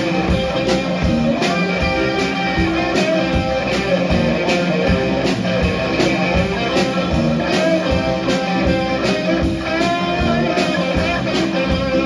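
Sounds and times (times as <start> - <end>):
drums keeping a steady beat: 0.0 - 12.0
electric guitar playing: 0.0 - 12.0.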